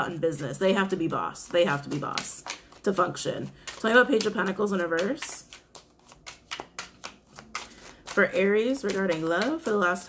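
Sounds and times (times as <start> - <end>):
cards being shuffled: 1.3 - 10.0.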